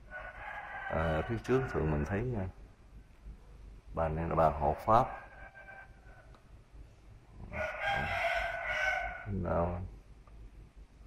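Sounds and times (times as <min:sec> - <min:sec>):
rooster crowing: 0:00.0 - 0:02.3, 0:04.7 - 0:06.4, 0:07.5 - 0:09.4.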